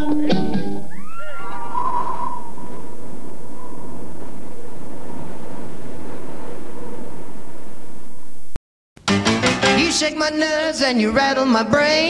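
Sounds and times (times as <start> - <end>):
falling whistle-like glides: 0.9 - 8.0
steady rushing noise: 1.6 - 8.6.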